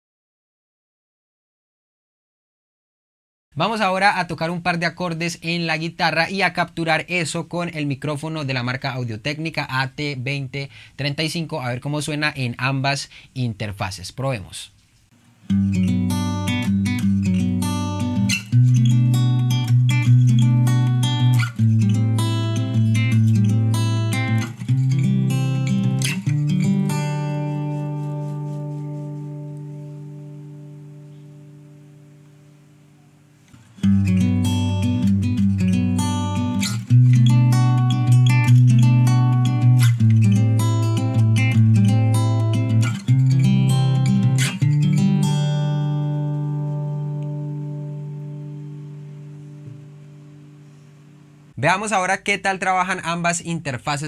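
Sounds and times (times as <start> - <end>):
acoustic guitar strumming: 15.4 - 51.6.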